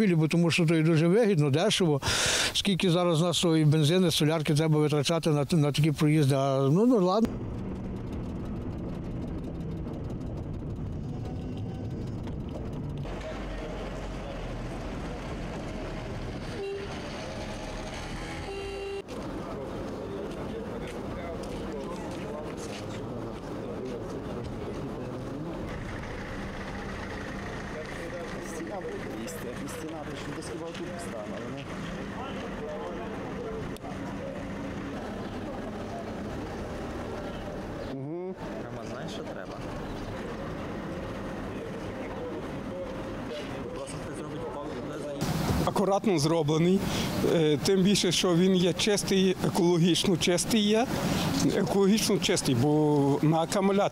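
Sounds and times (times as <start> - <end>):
vehicle noise: 0.0 - 53.9
short horn toots: 16.4 - 17.2, 18.2 - 19.1.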